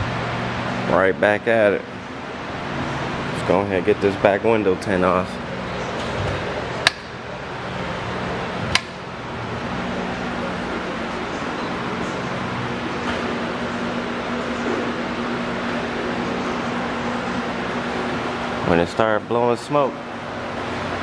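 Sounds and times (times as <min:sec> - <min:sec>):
sharp switch clicks: 0:06.8 - 0:07.1, 0:08.7 - 0:09.0.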